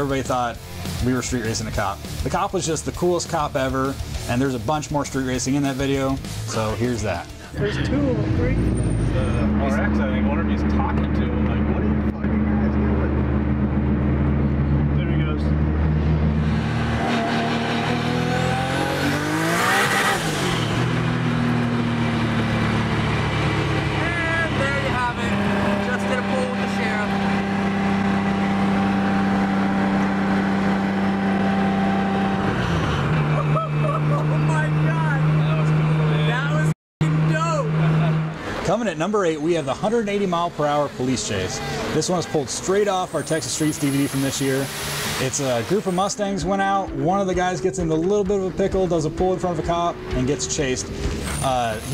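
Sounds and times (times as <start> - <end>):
car engine drone: 0.0 - 51.9
passing engine with rush of noise: 5.3 - 51.9
voices talking: 23.9 - 27.2, 33.3 - 51.9.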